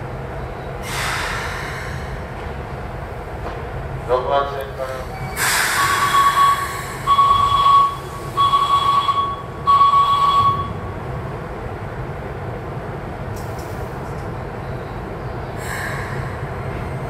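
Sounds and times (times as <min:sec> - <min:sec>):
low rumble of standing train: 0:00.0 - 0:17.0
long electronic beeps: 0:05.2 - 0:10.8.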